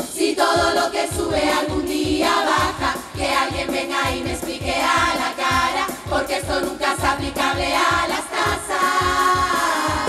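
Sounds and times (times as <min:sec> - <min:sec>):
low drum beat: 0:00.0 - 0:10.0
women singing in unison: 0:00.0 - 0:10.0.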